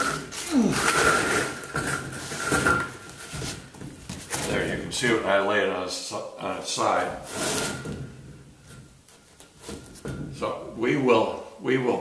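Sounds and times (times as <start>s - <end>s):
wooden beam scraping on workbench: 7.2s - 8.0s.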